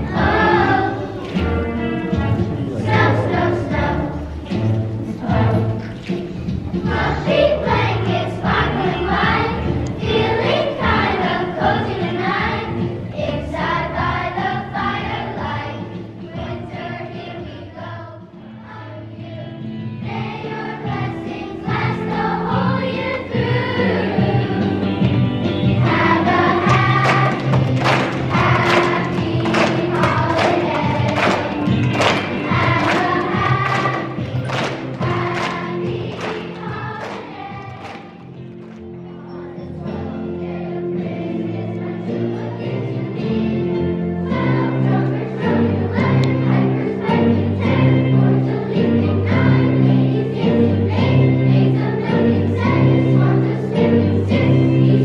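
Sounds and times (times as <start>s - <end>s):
people clapping in rhythm: 0.0s - 11.7s, 25.0s - 39.4s, 45.0s - 46.8s
instrumental accompaniment: 0.0s - 16.2s, 18.7s - 55.0s
children's choir singing: 0.0s - 55.0s.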